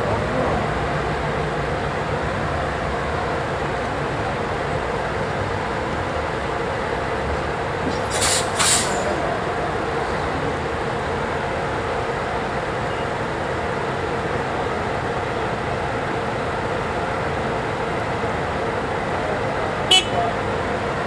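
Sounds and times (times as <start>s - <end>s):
bus diesel engines idling: 0.0s - 21.0s
high-pitched horn toot: 19.9s - 20.2s.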